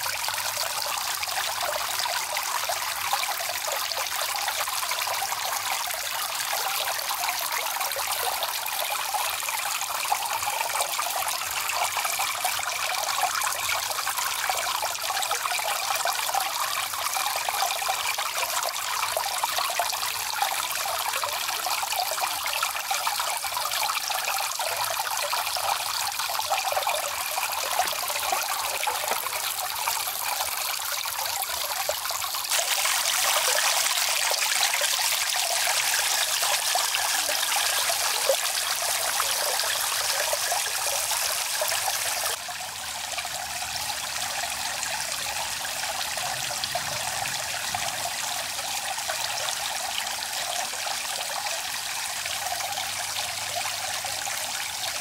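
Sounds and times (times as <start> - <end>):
fountain water trickling and splashing: 0.0 - 55.0.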